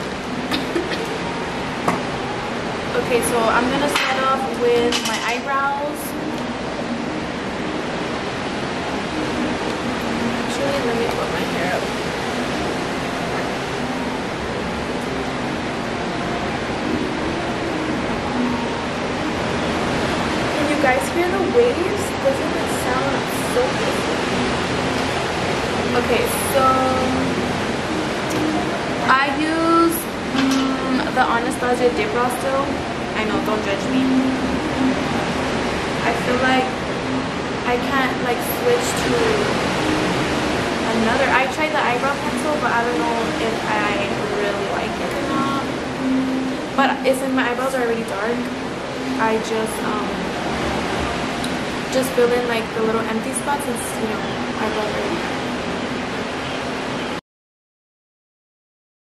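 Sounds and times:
ocean waves breaking: 0.0s - 57.2s
woman speaking: 2.9s - 6.2s, 10.3s - 11.9s, 20.6s - 24.2s, 25.9s - 27.4s, 29.0s - 34.3s, 36.0s - 36.8s, 37.7s - 39.6s, 40.8s - 45.8s, 46.7s - 50.3s, 51.9s - 55.4s.

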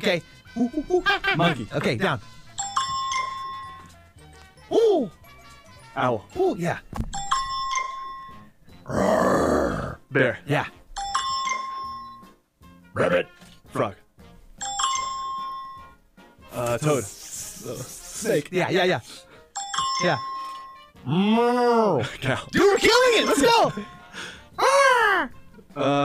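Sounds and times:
bell-like chime: 2.6s - 3.9s, 7.1s - 8.5s, 11.0s - 12.4s, 14.6s - 16.0s, 19.6s - 20.9s, 22.8s - 24.2s.

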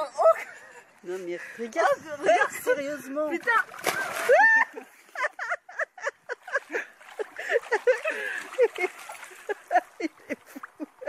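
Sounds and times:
water splashing in paddling pool: 2.3s - 5.3s, 6.3s - 11.0s.

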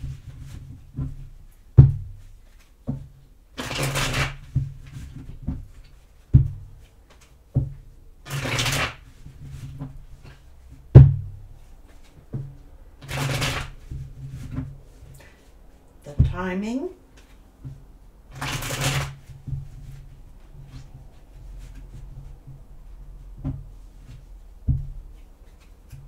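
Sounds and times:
cards riffle shuffling: 8.3s - 9.0s, 18.4s - 19.2s.

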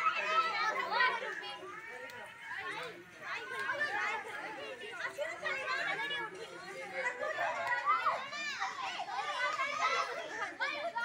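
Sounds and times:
children and women chattering: 0.0s - 11.0s.

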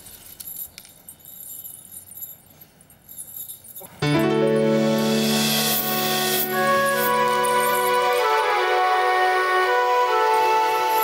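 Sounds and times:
glass bangles jingling: 0.0s - 4.0s, 5.7s - 8.6s.

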